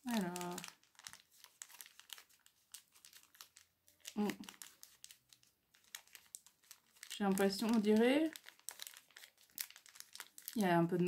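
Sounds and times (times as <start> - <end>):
wrapping crinkling and clicking: 0.0 - 11.0.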